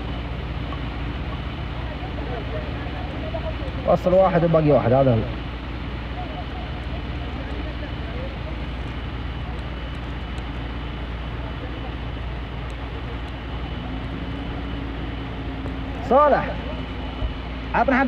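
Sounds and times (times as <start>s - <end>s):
faint voices: 0.0s - 18.0s.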